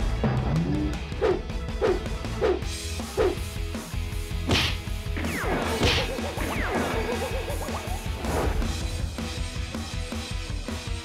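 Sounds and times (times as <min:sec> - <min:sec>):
comedic background music: 0:00.0 - 0:11.0
quick swooshes: 0:04.5 - 0:04.8
punch hit: 0:04.5 - 0:04.9.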